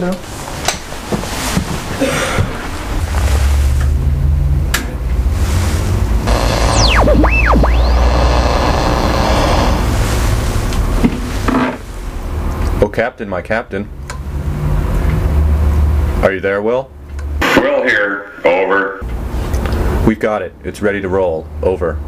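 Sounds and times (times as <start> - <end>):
sweeping whistling tones: 6.3 - 9.6
radio static hum and hiss: 6.3 - 10.1.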